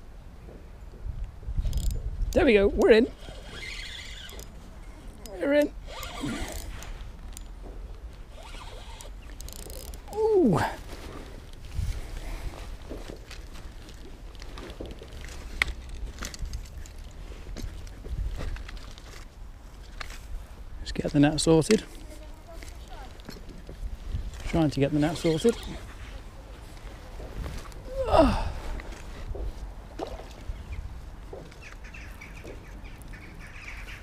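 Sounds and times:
spinning reel winding: 0:01.6 - 0:04.5, 0:05.2 - 0:06.9, 0:08.3 - 0:10.1
tackle clicks: 0:08.3 - 0:10.2
person exclaiming: 0:10.1 - 0:10.8, 0:27.8 - 0:28.6.

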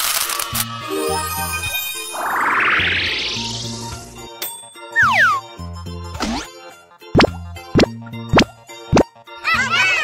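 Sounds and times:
light children's music: 0:00.8 - 0:10.0
rising sweep: 0:00.9 - 0:04.1.

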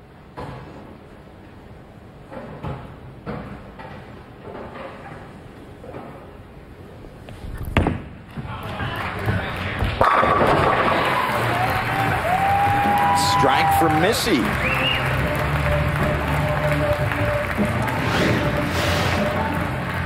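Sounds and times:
crowd cheering and applause: 0:08.5 - 0:20.0
bowling ball crashing into pins: 0:10.0 - 0:11.6
loud whistles: 0:11.4 - 0:15.2.

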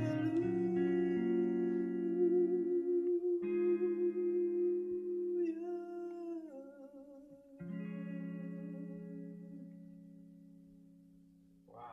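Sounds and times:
guitar ballad with effects: 0:00.0 - 0:11.9.

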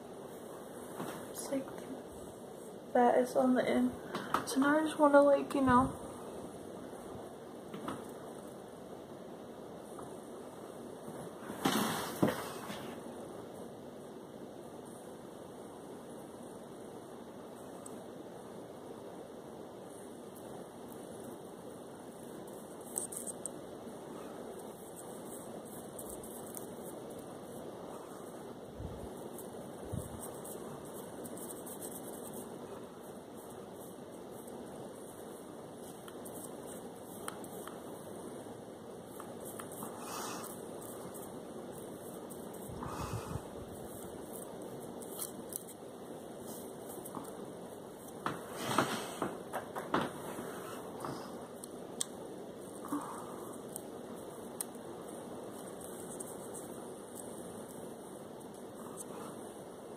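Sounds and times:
faint room hiss: 0:00.0 - 0:59.9.

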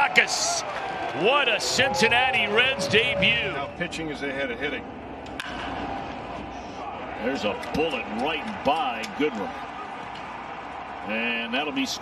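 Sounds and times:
ballpark broadcast ambience: 0:00.0 - 0:12.0.

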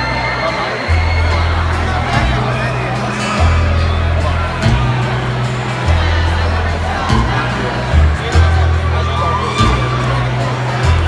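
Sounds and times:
acoustic guitar: 0:00.0 - 0:11.0
people talking: 0:00.0 - 0:11.0
upright bass low notes: 0:00.0 - 0:11.0.

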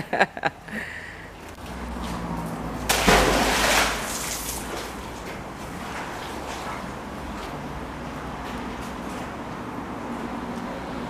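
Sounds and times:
magnet splashing into water: 0:02.9 - 0:04.9.

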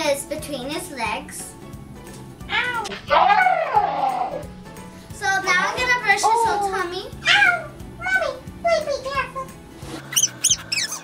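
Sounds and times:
child whining: 0:02.5 - 0:04.4, 0:07.2 - 0:07.8.

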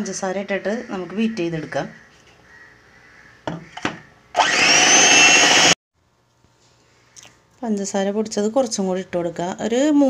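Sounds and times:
electric hand mixer whining: 0:04.4 - 0:05.8.

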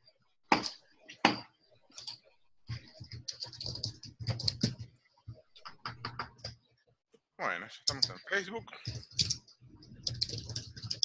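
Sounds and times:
computer keyboard typing: 0:01.9 - 0:06.6, 0:07.9 - 0:11.0.

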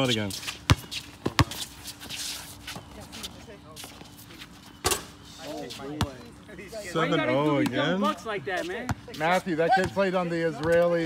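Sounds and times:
sneakers shuffling: 0:00.0 - 0:06.3
basketball bouncing on hard court: 0:00.7 - 0:01.6.

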